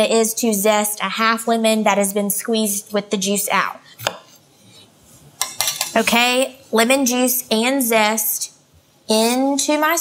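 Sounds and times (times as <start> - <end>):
glass kitchenware clinking: 5.4 - 6.0.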